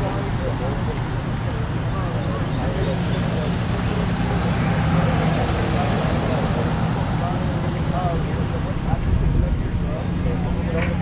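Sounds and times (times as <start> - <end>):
faint distant voices: 0.0 - 11.0
vehicle passing on road: 0.0 - 11.0.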